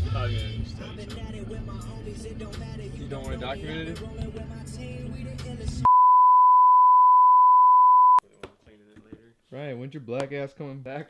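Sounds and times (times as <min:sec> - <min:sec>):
steady test-tone beep: 0:05.9 - 0:08.2.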